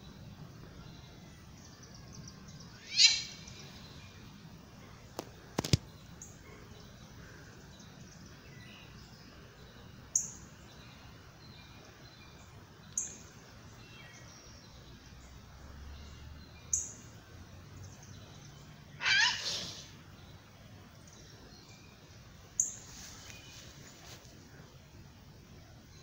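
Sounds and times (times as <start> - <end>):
birds chirping: 0.0 - 26.0
wavering bird call: 2.7 - 3.6, 19.0 - 20.0.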